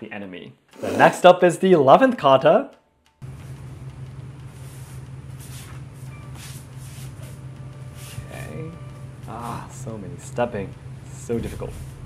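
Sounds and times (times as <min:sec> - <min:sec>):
low room hum: 0:00.8 - 0:12.0.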